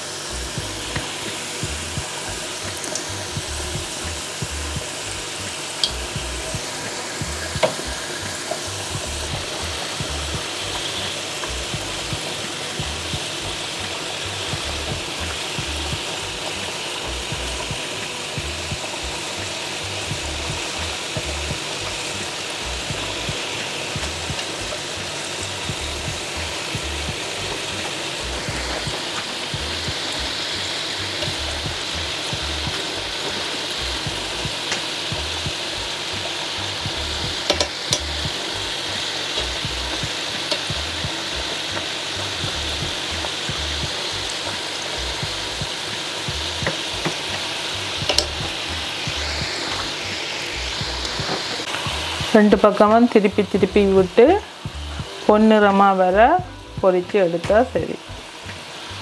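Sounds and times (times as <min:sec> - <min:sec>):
patties deep-frying in oil: 0:00.0 - 0:59.0.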